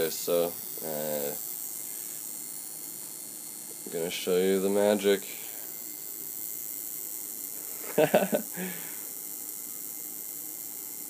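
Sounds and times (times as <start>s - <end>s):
electrical spark hiss and buzz: 0.0s - 11.0s.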